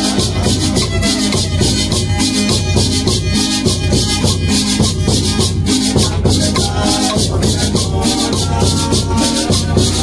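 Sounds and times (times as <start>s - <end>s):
violin and guitar folk tune: 0.0s - 10.0s.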